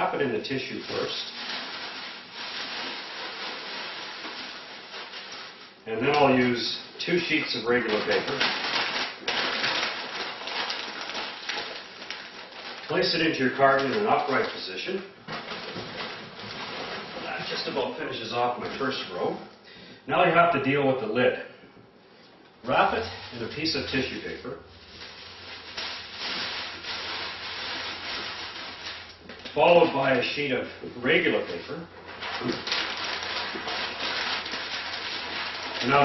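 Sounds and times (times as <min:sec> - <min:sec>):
packing paper rustling and crinkling: 0:00.0 - 0:19.3, 0:22.7 - 0:36.0.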